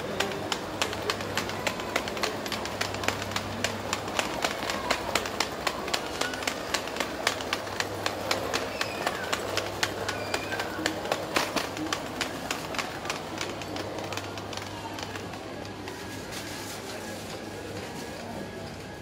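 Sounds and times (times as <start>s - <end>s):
footsteps on tiled floor: 0.0s - 18.9s
background bustle: 0.0s - 19.0s.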